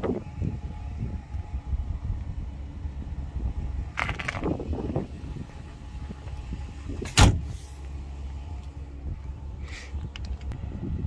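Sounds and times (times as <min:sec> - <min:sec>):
low rumble of handling and wind: 0:00.0 - 0:11.0
truck cab door thump: 0:07.0 - 0:07.5.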